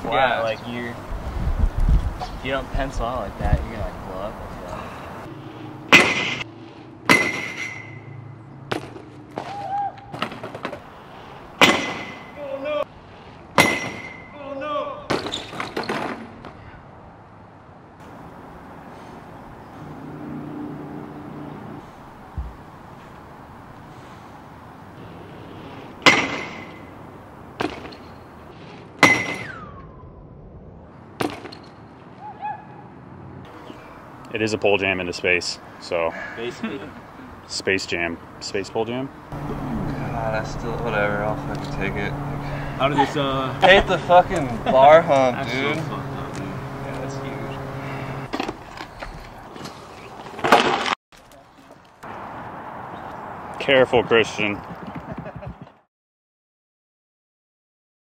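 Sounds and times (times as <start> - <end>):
bike impacts with metallic ring: 5.9 - 10.4, 11.6 - 12.4, 13.6 - 14.3, 26.0 - 26.9, 29.0 - 29.6.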